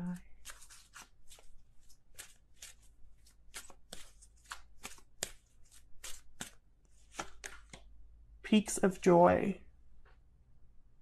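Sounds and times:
cards being shuffled by hand: 0:00.0 - 0:07.9.

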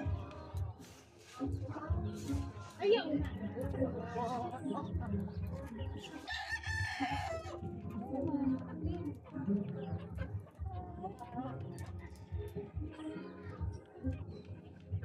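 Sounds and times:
chickens clucking: 0:00.0 - 0:15.0
rooster crowing: 0:06.3 - 0:07.6.

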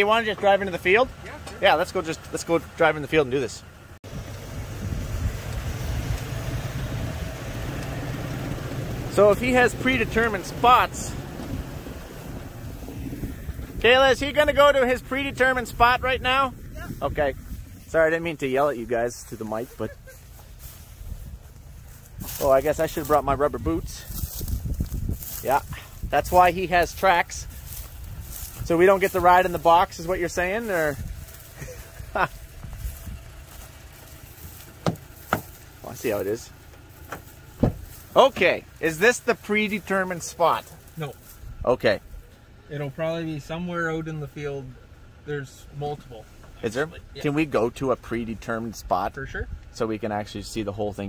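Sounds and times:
wind buffeting microphone: 0:04.1 - 0:07.5, 0:11.4 - 0:18.0, 0:20.1 - 0:33.6.

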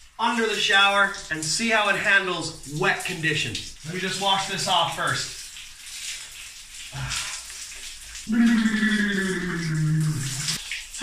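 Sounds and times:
shower spray running: 0:00.0 - 0:11.0
man sighing: 0:07.0 - 0:07.4.

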